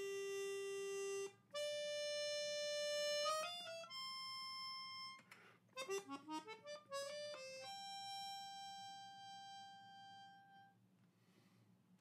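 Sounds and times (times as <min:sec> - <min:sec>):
melodica holding a note: 0:00.0 - 0:05.2, 0:05.8 - 0:10.8.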